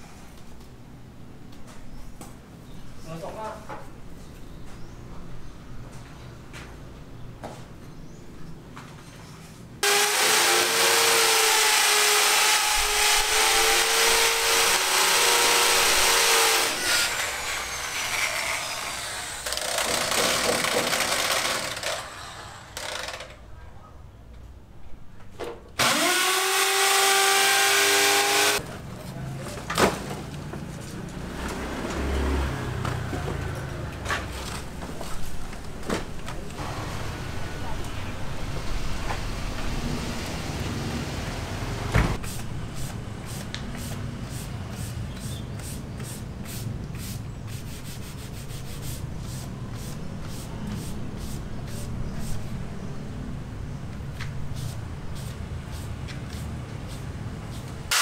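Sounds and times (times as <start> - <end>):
power tool whining on concrete: 9.8 - 23.3, 25.8 - 28.6
clatter and sharp knocks: 19.4 - 22.0.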